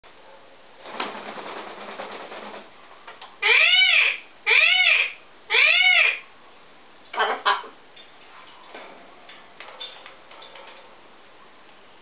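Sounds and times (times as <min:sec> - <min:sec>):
macaw squawking: 0:03.4 - 0:06.3.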